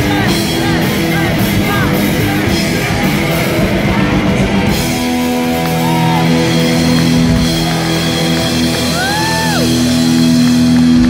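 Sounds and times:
rock band sustained chord: 0.0 - 11.0.

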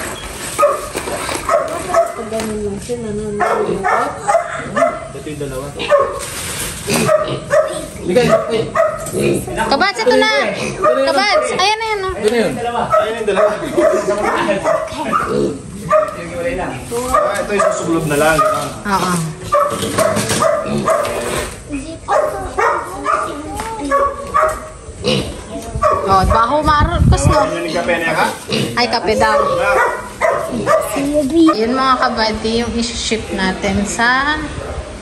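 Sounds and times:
young pigs squealing: 6.8 - 11.6, 24.5 - 26.5, 27.6 - 31.8.

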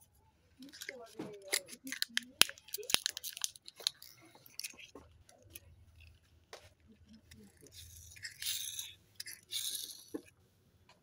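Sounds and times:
plastic clicks: 0.6 - 6.2
plastic wrapping crinkling: 0.6 - 9.9.

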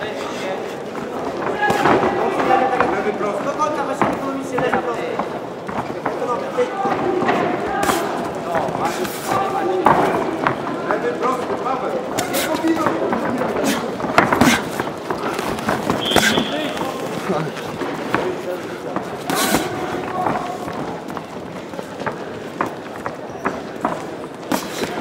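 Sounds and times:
boxing gloves smacking: 7.2 - 10.6, 12.1 - 17.1, 22.0 - 25.0.

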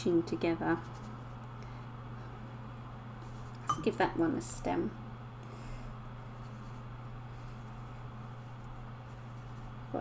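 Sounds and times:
faint soft scratching: 6.3 - 9.9.

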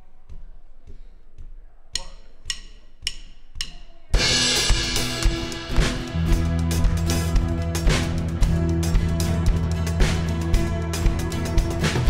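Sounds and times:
sharp count-in clicks: 1.9 - 3.9
live band playing loud: 4.2 - 12.0.

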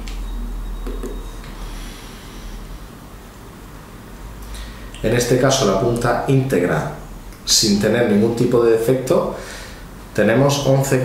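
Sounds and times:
steady low hum: 0.0 - 11.0
faint breathing through nose: 1.5 - 2.9, 4.4 - 4.9, 9.4 - 9.9.

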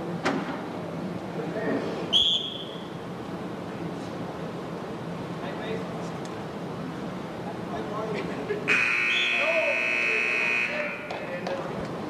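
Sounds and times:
scoreboard buzzer: 8.7 - 11.1.

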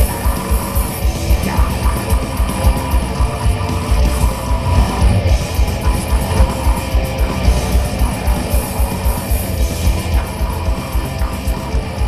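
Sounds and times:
heavy metal band playing: 0.0 - 12.0
rapid kick drum beats: 0.0 - 12.0.

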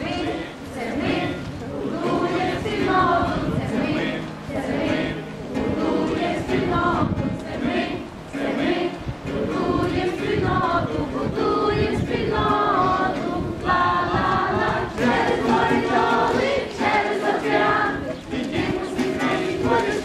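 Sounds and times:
acoustic guitar: 0.0 - 20.0
children singing in unison: 0.0 - 20.0.

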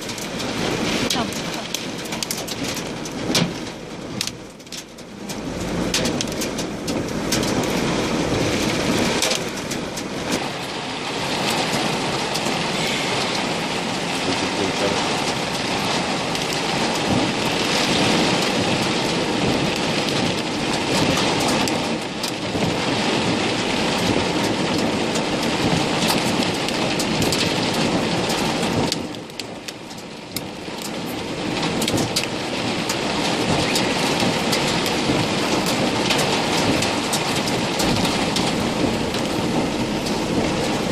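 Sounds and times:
hail and rain on vehicle roof: 0.0 - 40.9.

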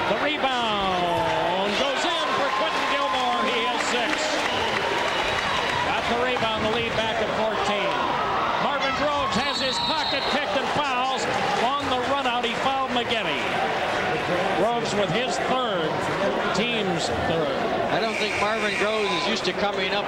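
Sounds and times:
crowd shouting and cheering: 0.0 - 20.0.

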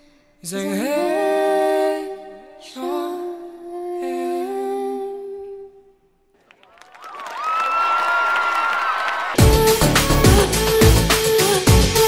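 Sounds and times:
dense music: 9.4 - 12.0
person humming: 9.4 - 12.0.

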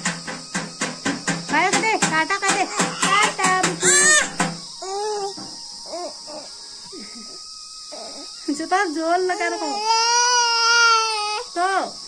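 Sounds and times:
baby crying: 2.6 - 6.5, 7.9 - 8.4, 9.3 - 11.6.

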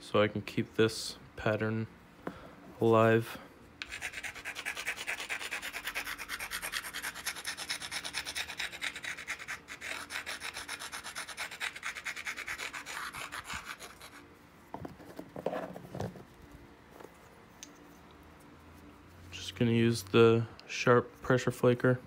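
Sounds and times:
stone scraping a blade edge: 3.8 - 14.2.

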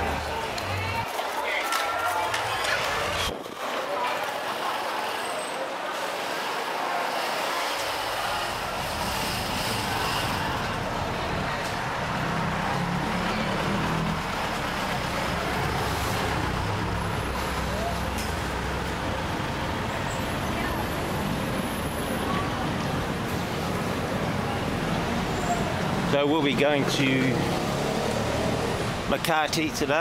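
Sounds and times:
car engines on road: 4.4 - 30.0.

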